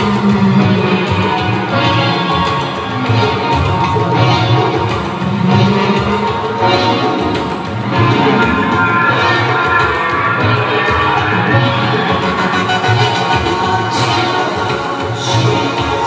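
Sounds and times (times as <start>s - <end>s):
crowd cheering and shouting: 0.0s - 16.0s
electronic music with pulsing beat: 0.0s - 16.0s.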